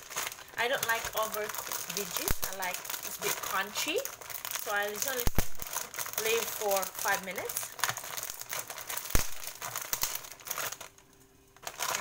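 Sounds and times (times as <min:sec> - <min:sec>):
vegetables sizzling in a pan: 0:00.0 - 0:10.8.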